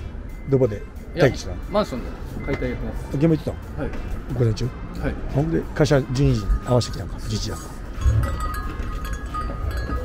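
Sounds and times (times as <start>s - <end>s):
door bell jingling: 6.4s - 10.0s.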